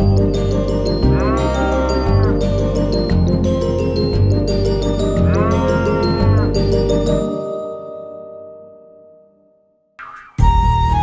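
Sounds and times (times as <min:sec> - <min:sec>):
backing music: 0:00.0 - 0:07.6
cow mooing: 0:01.0 - 0:02.7, 0:05.2 - 0:06.7.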